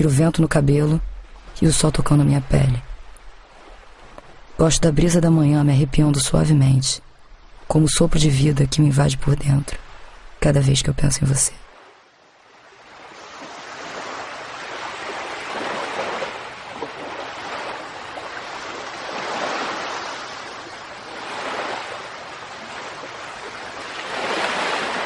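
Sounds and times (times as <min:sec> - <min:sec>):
waves breaking on sandy beach: 0:00.8 - 0:04.8, 0:11.7 - 0:25.0.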